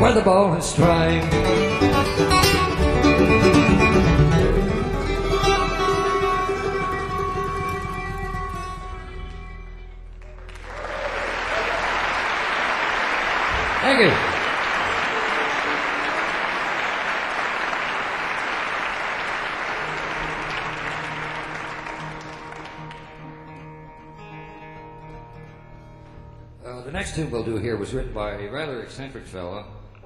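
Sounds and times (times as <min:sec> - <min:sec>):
sustained guitar notes: 0:00.0 - 0:10.3, 0:19.8 - 0:27.6
audience applauding and cheering: 0:10.0 - 0:23.4.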